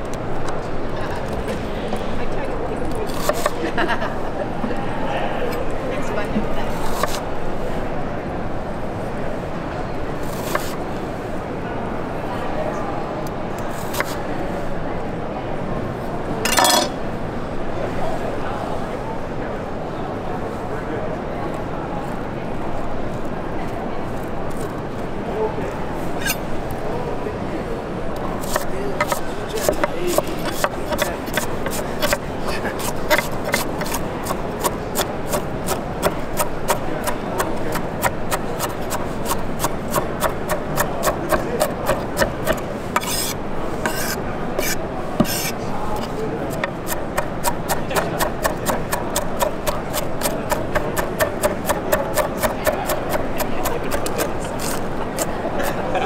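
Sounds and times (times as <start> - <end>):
knife chopping on wooden board: 28.4 - 32.2, 32.8 - 45.5, 46.5 - 54.8.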